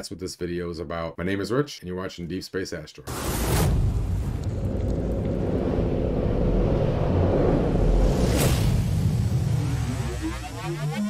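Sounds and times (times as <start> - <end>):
deep steady rumble: 3.4 - 10.6.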